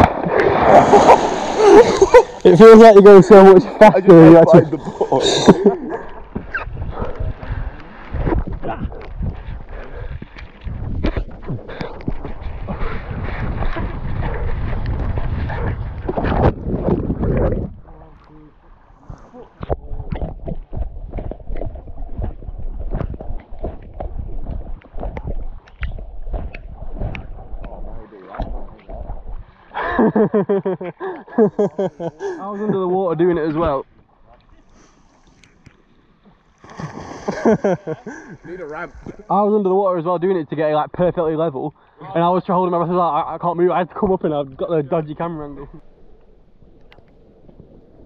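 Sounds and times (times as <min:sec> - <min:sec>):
water sloshing and splashing: 0:00.0 - 0:02.5, 0:03.3 - 0:30.0, 0:33.4 - 0:39.3
wind buffeting microphone: 0:04.6 - 0:18.1, 0:19.6 - 0:29.5.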